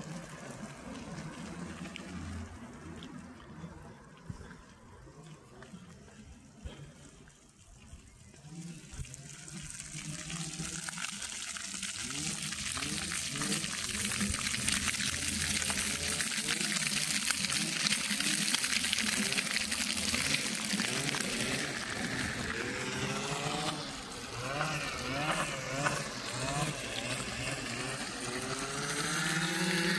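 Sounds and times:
fountain water splashing: 0.0 - 29.9.

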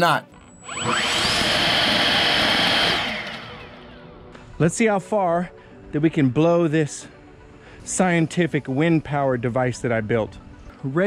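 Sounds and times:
leaf blower whining: 0.6 - 4.2.

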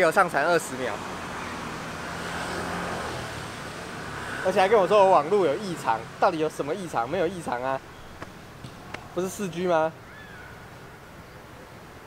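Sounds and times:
street traffic noise: 0.0 - 12.0
motor scooter passing: 0.5 - 6.2.

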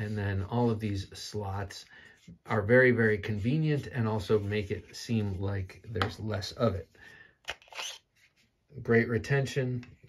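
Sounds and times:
blade sliding from sheath: 7.5 - 8.1.

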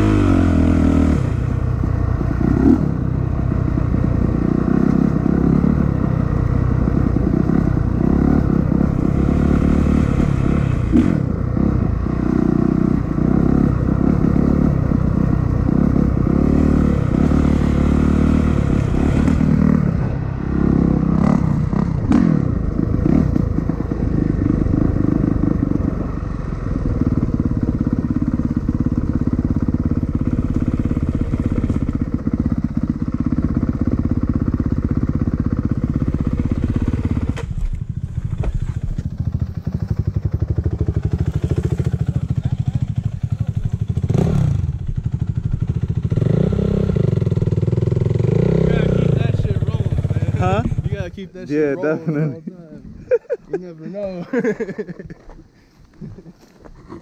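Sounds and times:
dirt bike engine revving: 0.0 - 52.2.

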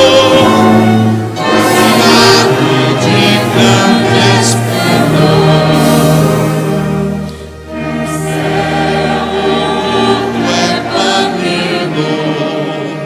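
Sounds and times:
choir singing a hymn: 0.0 - 13.0
orchestra strings and brass: 0.0 - 13.0.

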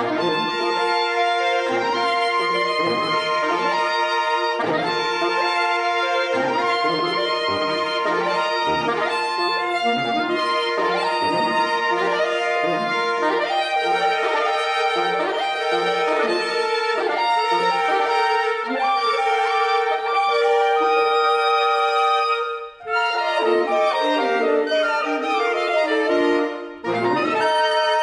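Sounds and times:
saxophone quartet playing: 0.0 - 28.0.

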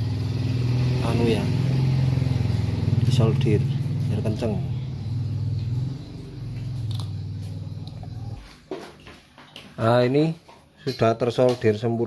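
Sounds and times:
low engine hum: 0.0 - 8.6.

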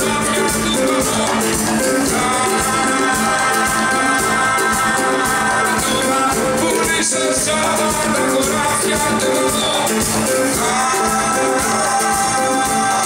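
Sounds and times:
acoustic guitar: 0.0 - 13.0
man singing: 0.0 - 13.0
second guitar: 0.0 - 13.0.

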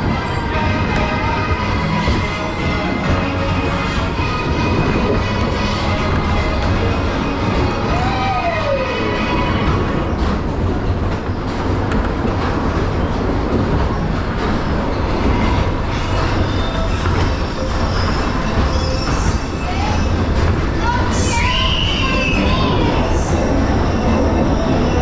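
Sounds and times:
fairground ride rumble and rattle: 0.0 - 25.0.

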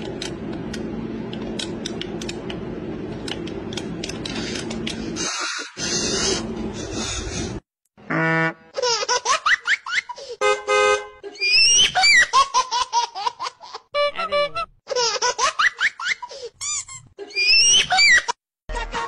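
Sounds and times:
high-pitched laughter: 11.2 - 19.0.

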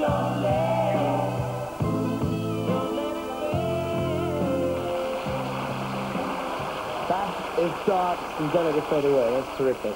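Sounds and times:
audience applauding and cheering: 4.5 - 9.9.

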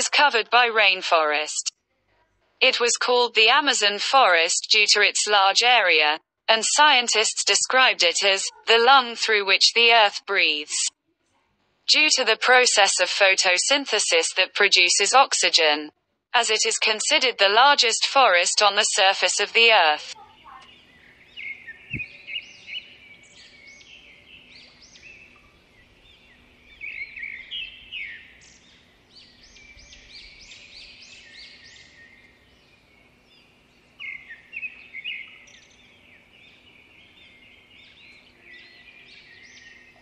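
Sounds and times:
birds chirping and calling: 19.5 - 40.0.

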